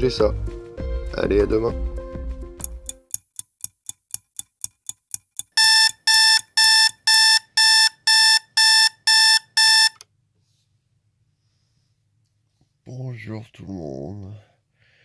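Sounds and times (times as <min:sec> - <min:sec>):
clock ticking: 0:02.6 - 0:10.0
alarm clock beeping: 0:05.4 - 0:10.0.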